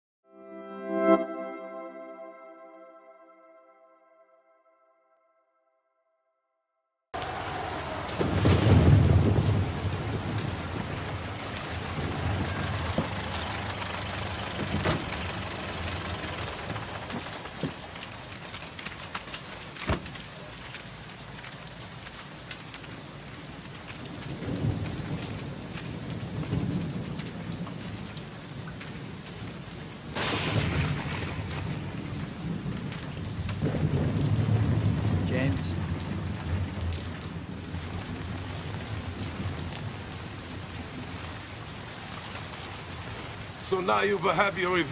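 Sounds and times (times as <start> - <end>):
thunder rolling: 7.2 - 18.6, 24.0 - 28.2, 30.0 - 41.7
steady rain: 7.2 - 44.9
sharp thunder crack: 7.9 - 13.4, 30.1 - 37.1.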